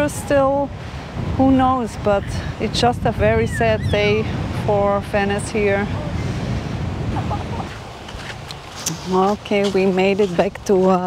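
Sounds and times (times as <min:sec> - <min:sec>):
surf washing in: 0:00.0 - 0:11.0
wind buffeting microphone: 0:00.0 - 0:11.0.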